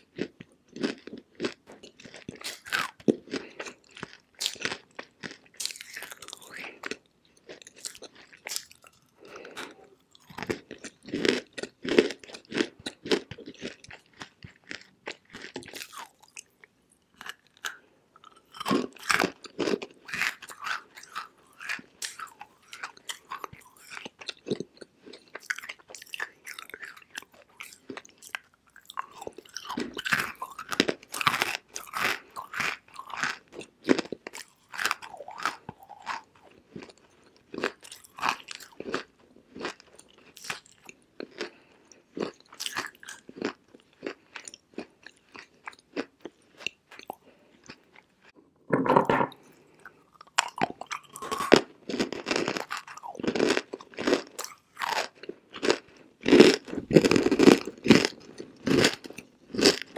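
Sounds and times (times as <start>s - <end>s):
crunchy chewing of dry clay: 0.0s - 48.4s, 49.3s - 59.9s.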